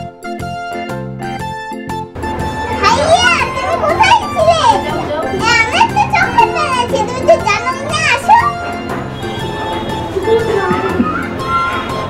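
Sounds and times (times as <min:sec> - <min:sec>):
background music: 0:00.0 - 0:12.0
child calling out: 0:10.2 - 0:12.0.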